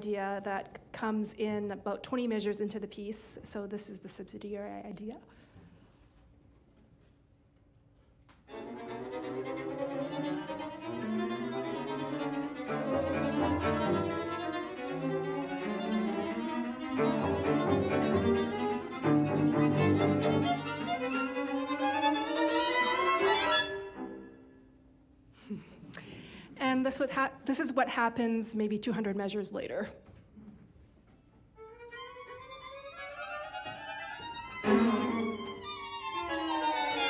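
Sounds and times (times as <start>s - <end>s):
string quartet bowed notes: 8.5s - 24.7s, 31.6s - 37.0s.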